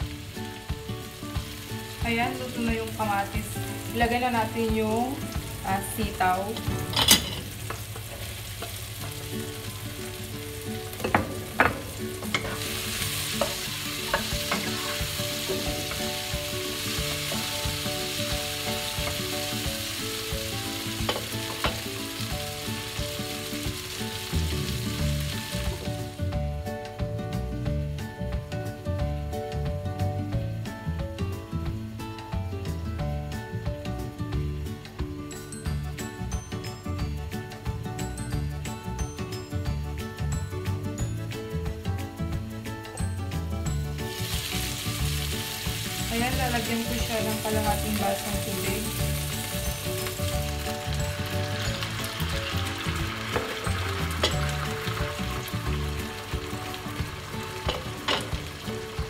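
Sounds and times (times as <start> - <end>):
beans sizzling in hot oil: 0.0 - 32.3, 33.1 - 59.0
background music: 0.0 - 59.0.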